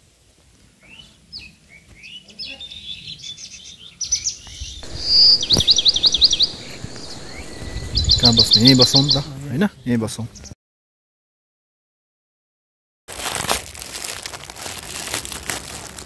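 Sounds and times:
bird song with fast trill: 0:01.4 - 0:09.5
birds chirping: 0:02.7 - 0:10.6.

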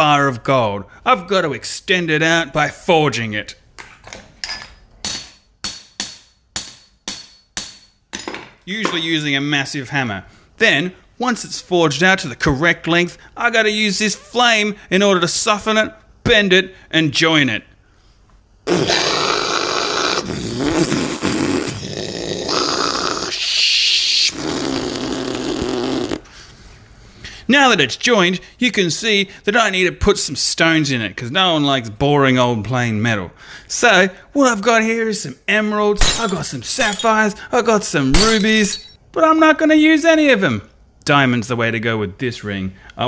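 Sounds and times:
hammer striking metal: 0:04.4 - 0:09.0, 0:36.0 - 0:37.1, 0:38.1 - 0:39.0
man imitating blowtorch with mouth: 0:18.6 - 0:26.4.

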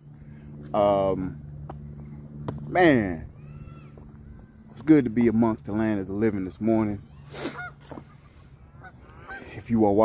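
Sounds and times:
goose honks: 0:07.5 - 0:09.8.

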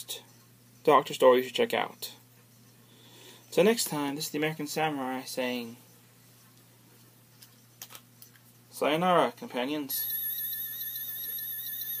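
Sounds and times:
toy buzzing electronic whine: 0:09.9 - 0:12.0.

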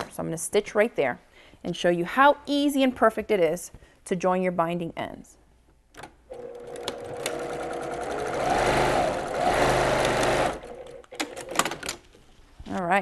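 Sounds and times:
sewing machine stitching: 0:06.3 - 0:11.7.

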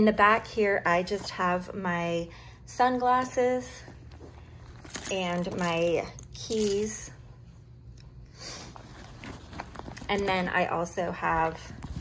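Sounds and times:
rustling leather handbag: 0:03.8 - 0:07.0, 0:08.7 - 0:12.0.

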